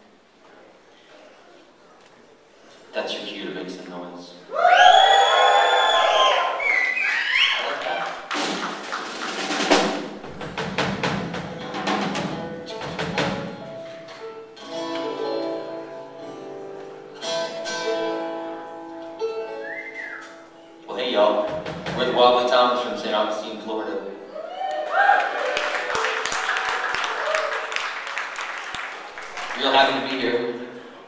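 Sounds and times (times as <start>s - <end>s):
knocks and guitar strums: 8.4s - 15.6s, 21.3s - 22.4s.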